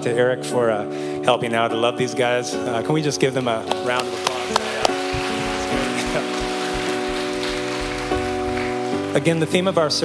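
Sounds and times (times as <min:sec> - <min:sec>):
held chord background music: 0:00.0 - 0:10.0
congregation applauding: 0:03.6 - 0:10.0.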